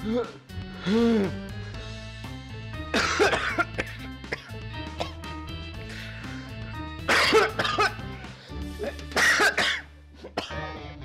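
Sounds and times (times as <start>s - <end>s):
soft background music: 0.0s - 11.0s
man coughing: 2.9s - 5.2s, 7.1s - 8.0s, 8.8s - 10.5s.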